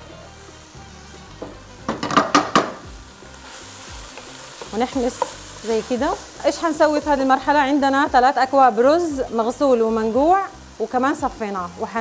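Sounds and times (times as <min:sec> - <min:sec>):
meat sizzling in a frying pan: 0:00.0 - 0:12.0
spatula scraping and knocking pans: 0:01.4 - 0:02.8.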